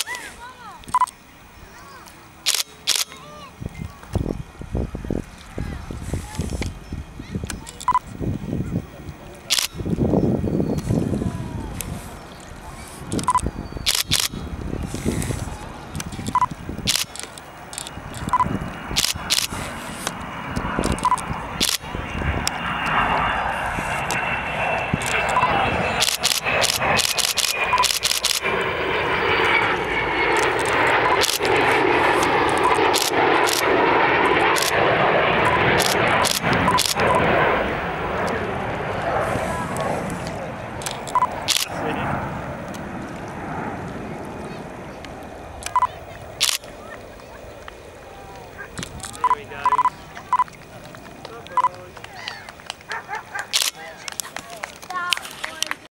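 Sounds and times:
jet engine roar with whine: 0:00.0 - 0:55.9
voices: 0:00.0 - 0:55.9
sharp clicks: 0:00.8 - 0:01.2, 0:02.0 - 0:03.2, 0:09.0 - 0:09.8, 0:13.1 - 0:14.4, 0:15.9 - 0:21.8, 0:25.0 - 0:28.5, 0:30.3 - 0:33.7, 0:34.5 - 0:34.8, 0:35.4 - 0:37.2, 0:39.8 - 0:41.7, 0:45.0 - 0:46.7, 0:48.4 - 0:55.8.

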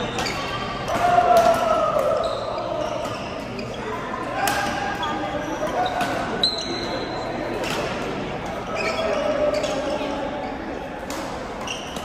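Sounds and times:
shoe squeak on court floor: 0:00.0 - 0:00.9, 0:02.2 - 0:04.0, 0:04.8 - 0:07.8, 0:08.6 - 0:10.7, 0:11.6 - 0:12.0
background voices chatter: 0:00.0 - 0:12.0.

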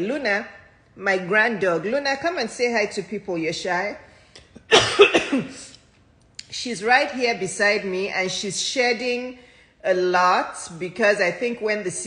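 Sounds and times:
woman coughing: 0:04.6 - 0:05.7.

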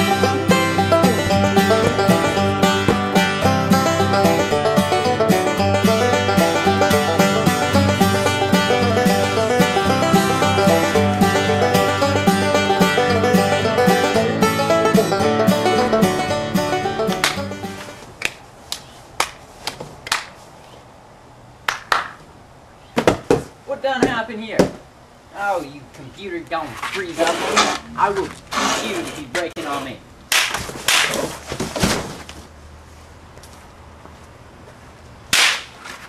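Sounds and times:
sharp crack: 0:30.3 - 0:31.3, 0:35.3 - 0:36.0.

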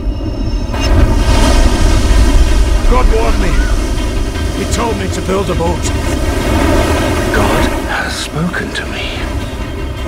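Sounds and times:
deep rumble with rushing hiss: 0:00.8 - 0:09.7.

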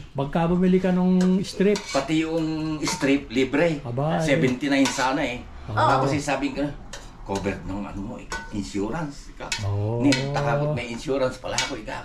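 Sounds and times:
dishes and utensils clinking: 0:01.1 - 0:03.4, 0:04.3 - 0:05.3, 0:06.0 - 0:12.0.

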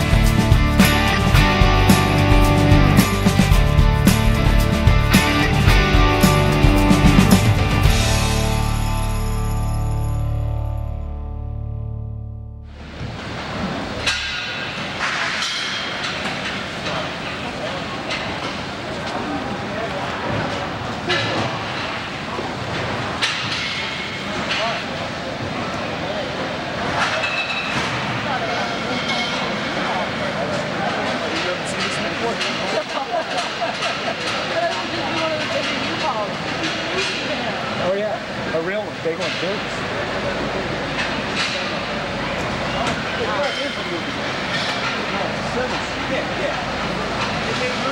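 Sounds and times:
voices talking in echoing hall: 0:14.0 - 0:47.9.

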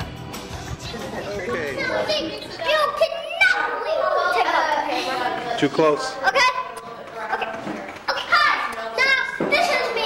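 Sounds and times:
young children talking: 0:01.0 - 0:10.0.

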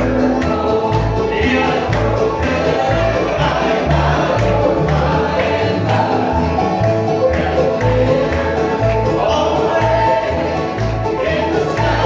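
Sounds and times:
bluegrass band playing: 0:00.0 - 0:12.0
upright bass notes: 0:00.0 - 0:12.0
voices singing in harmony: 0:00.0 - 0:12.0.

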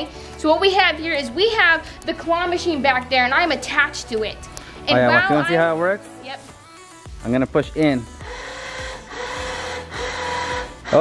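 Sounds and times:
electric winch motor running: 0:08.0 - 0:11.0.

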